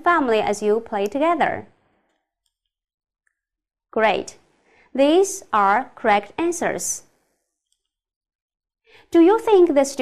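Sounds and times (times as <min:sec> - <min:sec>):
woman speaking: 0:00.0 - 0:01.7, 0:04.0 - 0:07.1, 0:09.1 - 0:10.0.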